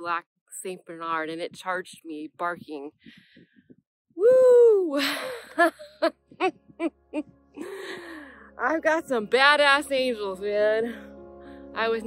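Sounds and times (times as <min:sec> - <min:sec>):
breathy out-breath: 0:03.0 - 0:03.7, 0:07.6 - 0:08.6, 0:10.9 - 0:11.8
woman laughing: 0:04.7 - 0:08.2.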